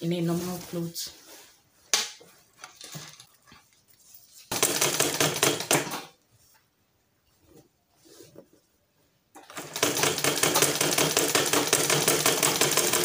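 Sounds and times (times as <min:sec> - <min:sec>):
sewing machine stitching: 0:09.4 - 0:13.0.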